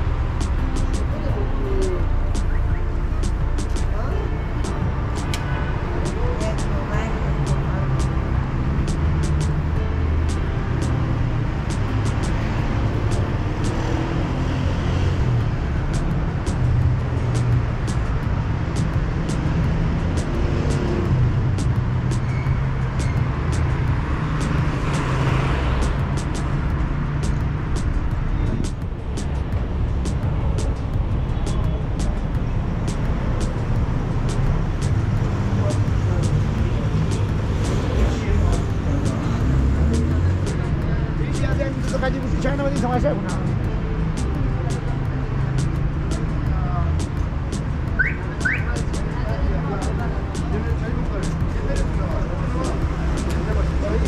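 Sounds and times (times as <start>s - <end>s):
cars passing on street: 0.0s - 54.0s.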